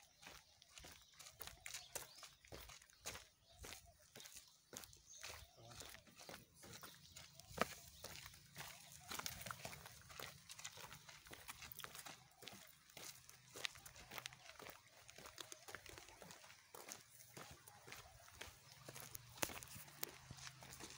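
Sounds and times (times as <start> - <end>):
footsteps on ground: 0.0 - 20.9.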